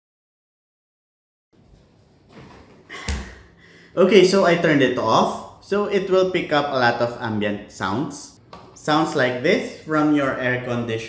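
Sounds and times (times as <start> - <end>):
air-conditioning hum: 1.6 - 11.0.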